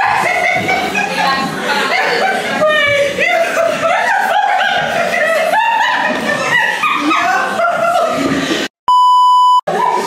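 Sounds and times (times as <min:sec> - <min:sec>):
voices talking and laughing: 0:00.0 - 0:08.7
censor bleep: 0:08.9 - 0:09.7.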